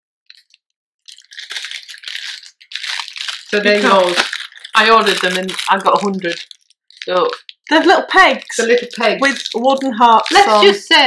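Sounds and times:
plastic bag crinkling: 0.3s - 11.0s.

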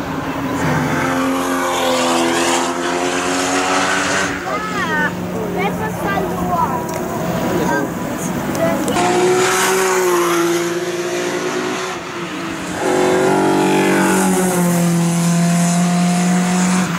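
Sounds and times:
race car engine passing: 0.0s - 16.9s.

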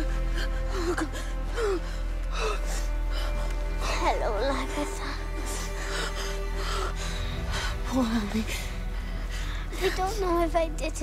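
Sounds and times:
boy gasping and whimpering: 0.0s - 3.4s
slow film music: 0.0s - 11.0s.

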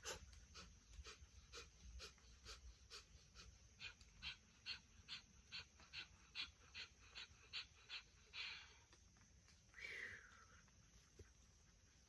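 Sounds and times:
dog panting: 0.0s - 9.6s.

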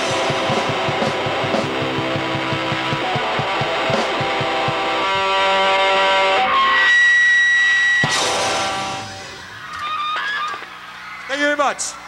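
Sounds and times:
live rock band: 0.0s - 11.2s
cymbal crash ringing: 8.0s - 9.4s.

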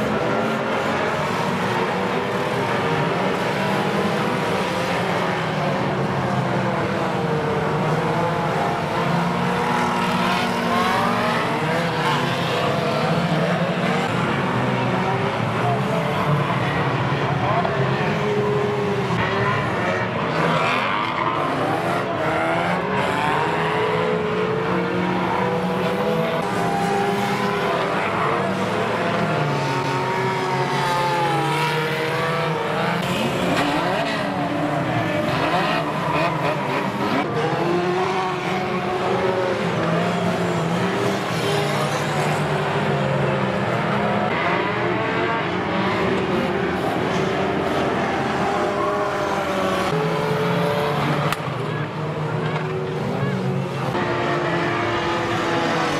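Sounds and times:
racing car engines revving: 0.0s - 55.9s.

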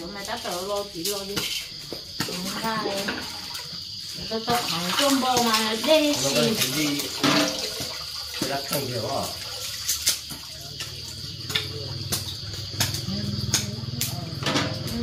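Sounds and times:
water splashing and trickling: 0.0s - 15.0s
bowl knocking against metal pot: 7.2s - 7.8s.

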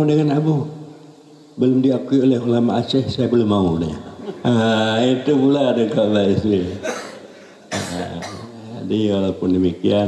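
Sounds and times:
man coughing: 6.8s - 8.6s.

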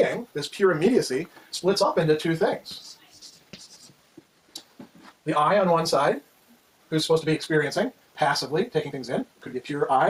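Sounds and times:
chalk scratching on blackboard: 2.7s - 4.0s.

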